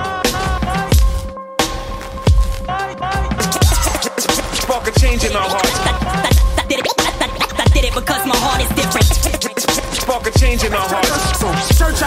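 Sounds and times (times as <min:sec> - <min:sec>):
hip hop music: 0:00.0 - 0:12.0
turntable scratching: 0:00.2 - 0:12.0
heavy kick drum: 0:03.5 - 0:04.0, 0:05.0 - 0:06.7, 0:07.7 - 0:08.0, 0:10.4 - 0:10.7, 0:11.7 - 0:12.0.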